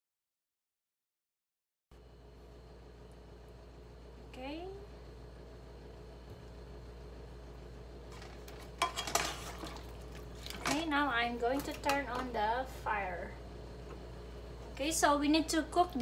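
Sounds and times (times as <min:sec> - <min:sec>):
spatulas scraping frying pan: 0:08.1 - 0:10.9.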